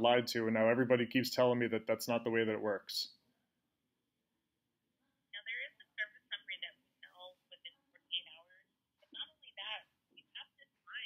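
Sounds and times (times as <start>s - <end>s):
person speaking over a phone: 5.4s - 11.0s.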